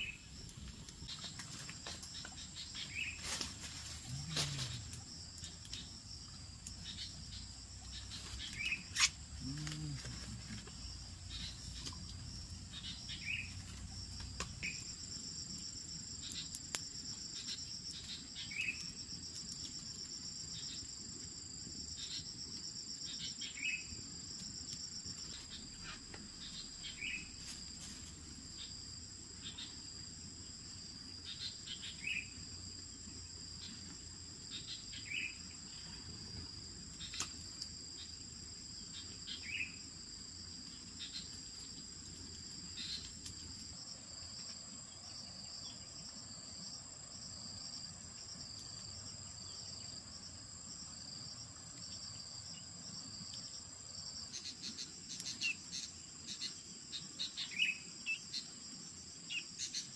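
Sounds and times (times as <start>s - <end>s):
insects chirping: 0.0s - 59.9s
short insect call: 0.0s - 59.9s.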